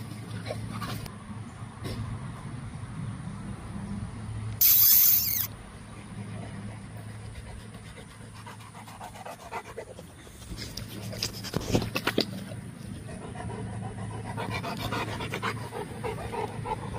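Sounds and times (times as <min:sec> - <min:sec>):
dog panting: 0:06.2 - 0:16.9.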